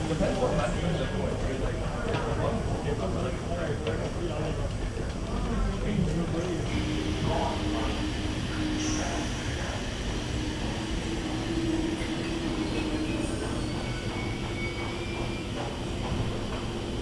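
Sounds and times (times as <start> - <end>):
train rumble and hum: 0.0 - 17.0.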